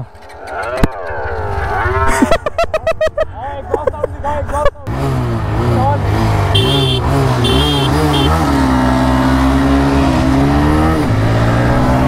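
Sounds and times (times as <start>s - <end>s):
small motorcycle engine revving: 4.9s - 12.0s.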